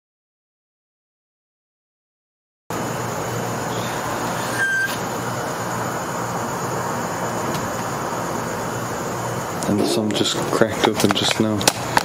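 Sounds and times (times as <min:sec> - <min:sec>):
steady background hiss and rumble: 0:02.7 - 0:12.0
brief faint tone: 0:04.5 - 0:05.0.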